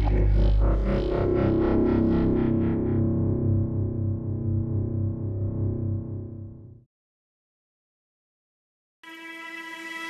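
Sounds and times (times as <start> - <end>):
sustained low synth chord: 0.0 - 6.8.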